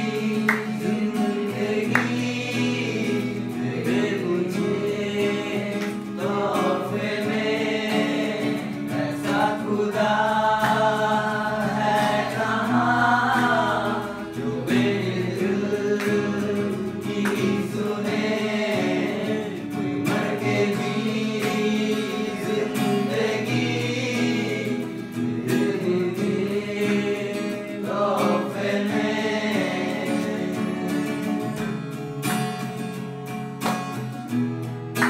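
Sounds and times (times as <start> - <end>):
voices singing together: 0.0 - 33.2
strummed acoustic guitar: 0.0 - 35.0.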